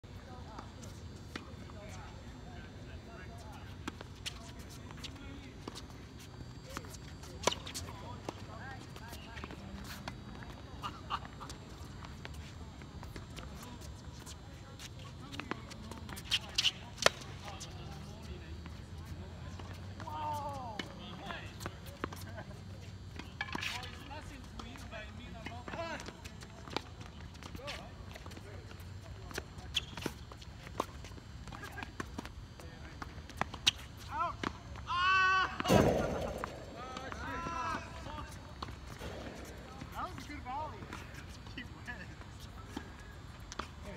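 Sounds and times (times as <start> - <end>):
distant voices: 23.2 - 43.9
tennis balls struck and bouncing: 35.6 - 41.1.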